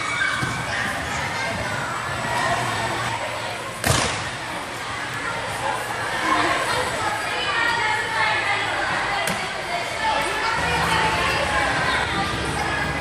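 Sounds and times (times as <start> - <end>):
background voices and chatter: 0.0 - 13.0.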